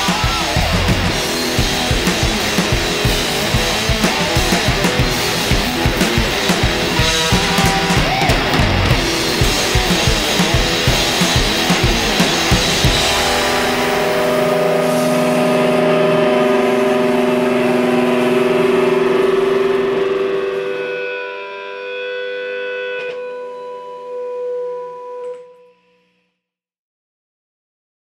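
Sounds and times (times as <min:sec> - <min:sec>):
drum hits: 0:00.0 - 0:20.5
distorted electric guitar chord: 0:00.0 - 0:24.8
thin sustained guitar tones: 0:00.0 - 0:25.6.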